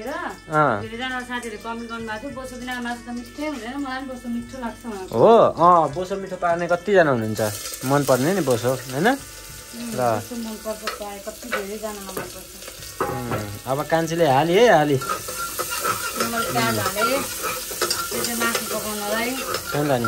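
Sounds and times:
shallots sizzling in hot oil: 0:00.0 - 0:20.0
metal spoon scraping a pot: 0:10.5 - 0:20.0.

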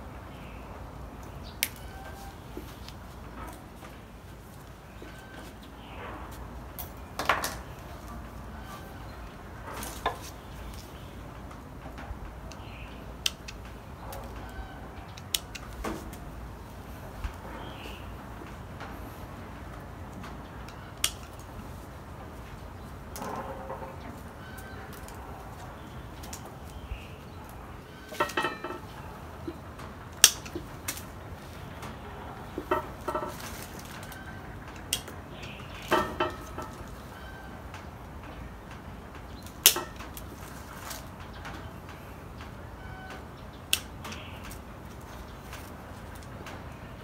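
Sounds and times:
pruning shears snipping twigs: 0:12.4 - 0:16.2, 0:20.1 - 0:21.7, 0:24.1 - 0:37.0, 0:39.3 - 0:41.7, 0:43.6 - 0:46.3.

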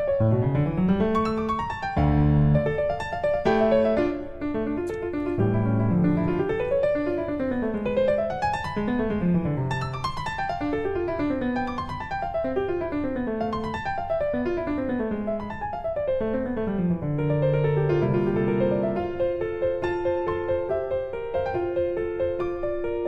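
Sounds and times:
piano music: 0:00.0 - 0:23.0.

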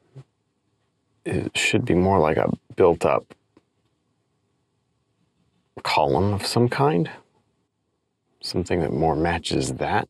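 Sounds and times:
man speaking: 0:01.3 - 0:03.3, 0:05.8 - 0:07.2, 0:08.4 - 0:10.0.

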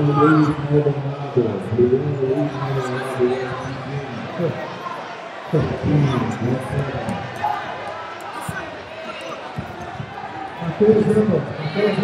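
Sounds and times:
scattered voices in a hall: 0:00.0 - 0:12.0.

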